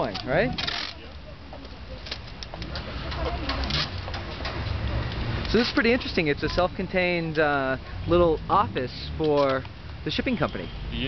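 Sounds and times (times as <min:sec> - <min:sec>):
faint voices of people: 0:00.0 - 0:05.1
low street rumble: 0:00.0 - 0:11.0.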